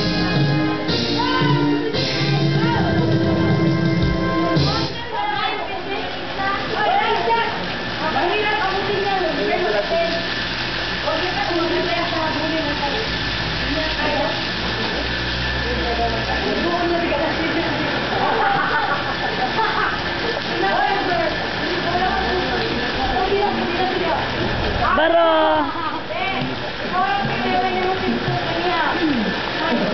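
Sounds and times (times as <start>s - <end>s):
people talking indistinctly: 0.0s - 29.9s
water spout splashing into pool: 4.6s - 29.9s.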